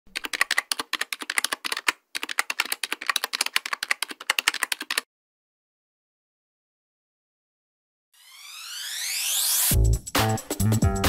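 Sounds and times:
rapid typing on keys: 0.1s - 5.1s.

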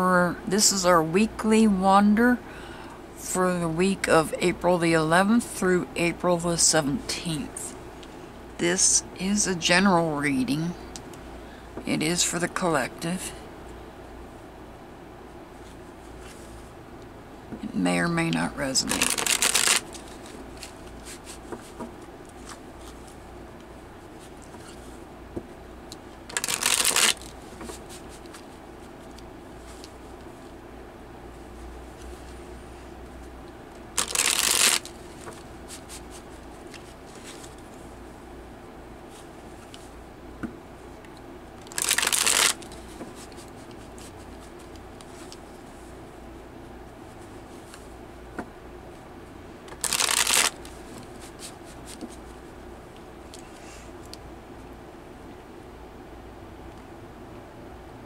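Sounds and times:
cards riffle-shuffled: 18.8s - 23.1s, 26.3s - 28.5s, 33.9s - 37.7s, 41.6s - 45.4s, 49.7s - 52.3s.

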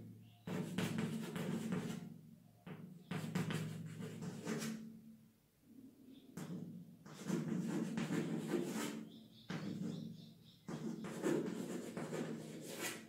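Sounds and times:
board knocking under chalk: 0.5s - 2.0s, 10.7s - 13.0s
chalk scratching on chalkboard: 0.5s - 2.0s, 3.1s - 4.8s, 7.1s - 10.0s, 10.7s - 13.0s.

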